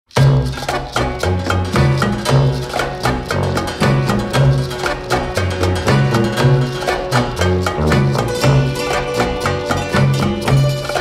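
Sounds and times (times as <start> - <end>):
bass line: 0.1 - 11.0
instrumental band music: 0.1 - 11.0
quick percussive beat: 0.1 - 11.0.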